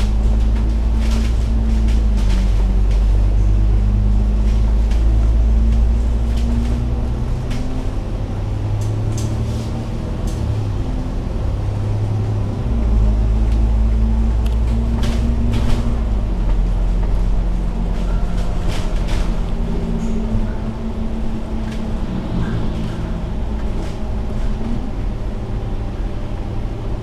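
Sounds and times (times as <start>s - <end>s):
bodywork rattles and clicks: 0.0s - 3.6s, 14.4s - 20.5s
bus engine droning: 0.0s - 27.0s.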